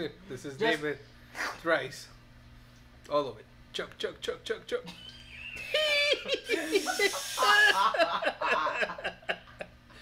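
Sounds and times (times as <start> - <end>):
people laughing: 4.9 - 9.8.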